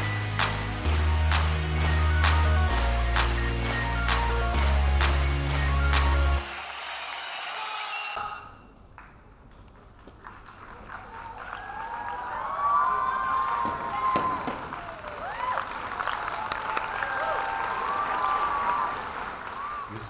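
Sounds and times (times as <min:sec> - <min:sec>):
audience cheering: 0:06.4 - 0:08.4, 0:10.8 - 0:20.0
audience applauding: 0:09.9 - 0:20.0.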